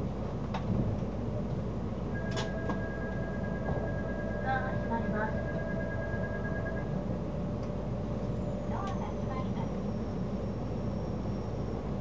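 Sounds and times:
train humming: 0.0 - 12.0.

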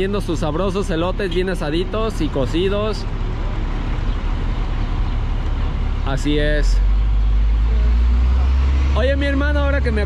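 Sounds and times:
cars and trucks passing: 0.0 - 10.0.

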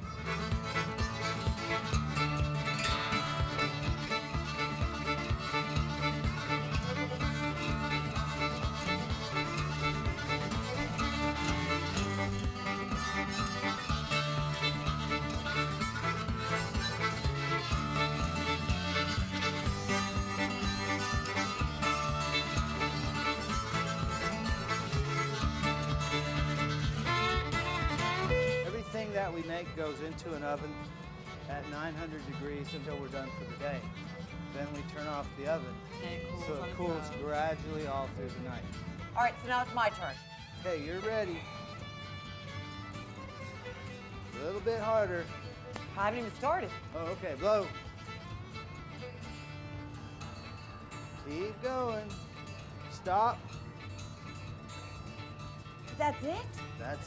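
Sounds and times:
fiddle music with steady beat: 0.0 - 57.0.

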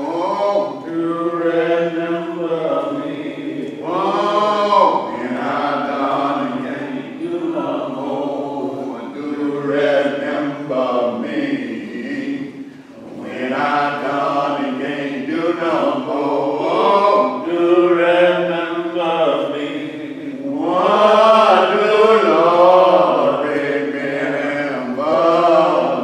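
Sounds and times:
voices singing a slow hymn: 0.0 - 26.0.

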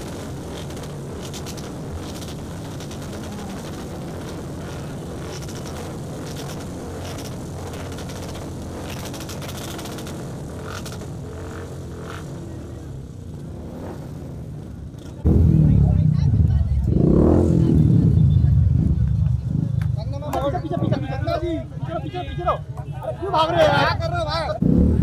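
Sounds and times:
street and crowd noise: 0.0 - 25.0
voices: 0.0 - 25.0
loud low rumble: 10.2 - 22.5, 24.6 - 25.0.

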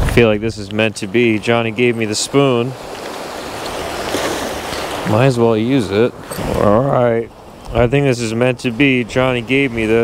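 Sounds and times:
small waves washing on sand: 0.0 - 10.0.

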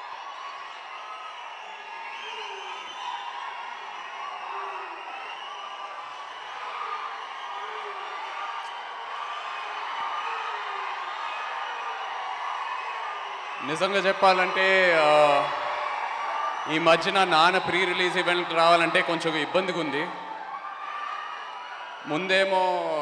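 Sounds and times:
audience cheering and whooping: 0.0 - 23.0.

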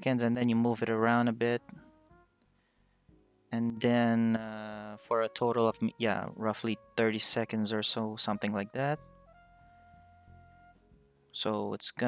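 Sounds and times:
faint held musical notes: 0.0 - 12.0.

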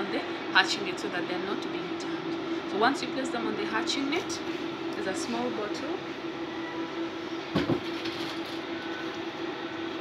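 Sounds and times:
fan humming: 0.0 - 10.0.

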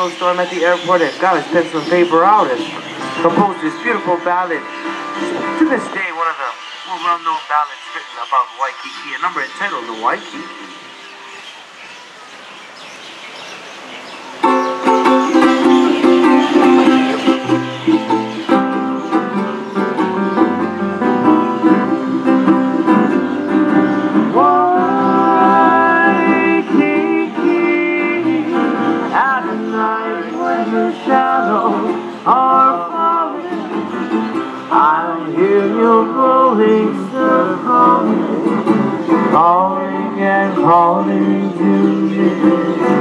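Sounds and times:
ukulele and upright bass ballad: 14.4 - 43.0.

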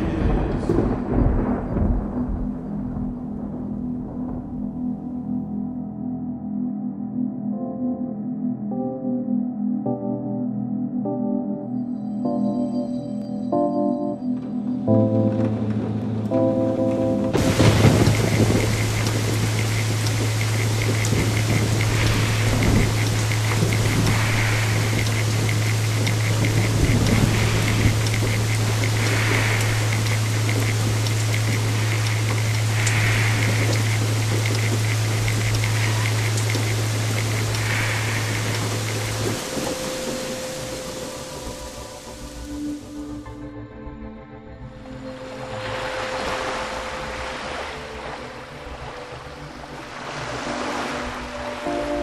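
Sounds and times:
rain-like noise: 0.0 - 4.4, 15.0 - 43.4, 45.0 - 52.0
low hum: 14.4 - 49.1
faint high ticking: 17.4 - 43.0.

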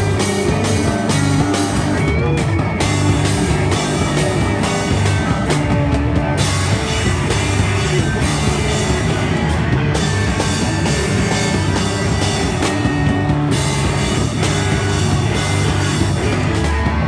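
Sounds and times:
bass guitar: 0.0 - 17.0
distorted electric guitars: 0.0 - 17.0
drum kit: 0.0 - 17.0.

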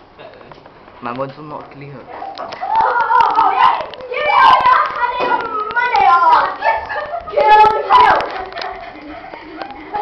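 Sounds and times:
girls squealing and shouting: 2.1 - 8.4.

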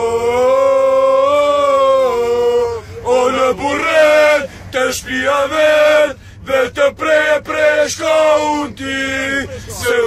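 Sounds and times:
men chanting: 0.0 - 10.0.

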